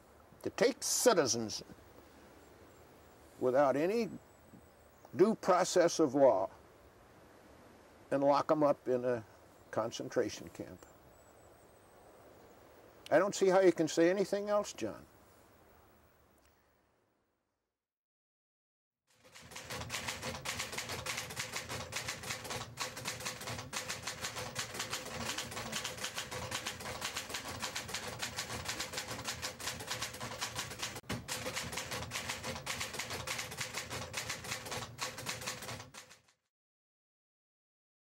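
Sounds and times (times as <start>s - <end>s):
fast mechanical clatter: 19.2s - 36.3s.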